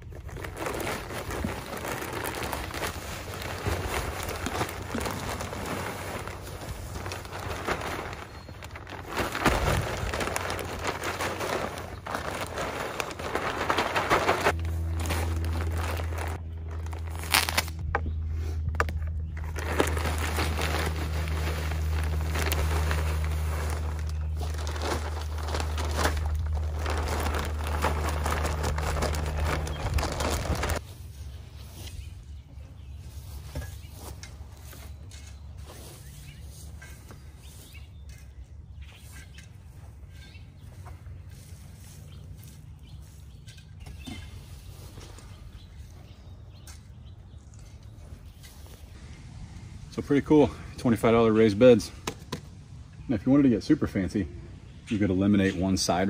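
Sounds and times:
plastic bag crinkling: 0:00.0 - 0:17.8, 0:19.4 - 0:30.8
steady low hum: 0:12.3 - 0:35.8.

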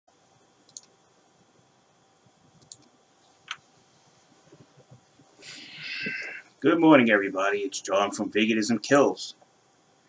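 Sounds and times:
room hiss: 0:00.1 - 0:10.0
computer mouse clicks: 0:00.7 - 0:00.9, 0:02.6 - 0:02.9.

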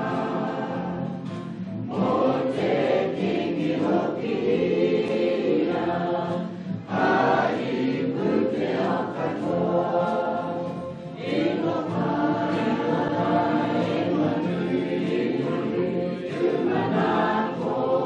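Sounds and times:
choir singing: 0:00.0 - 0:18.0.

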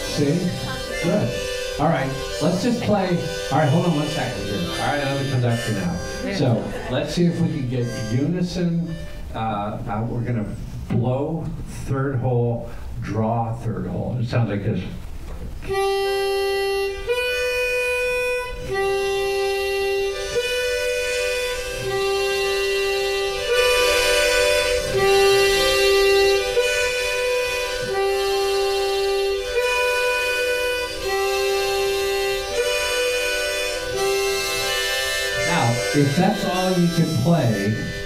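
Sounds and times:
harmonica alternating two notes: 0:00.0 - 0:11.8, 0:15.6 - 0:38.0.

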